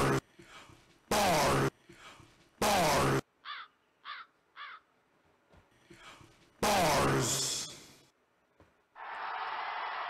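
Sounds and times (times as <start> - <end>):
downward-sweeping caw-like calls: 3.4 - 4.9.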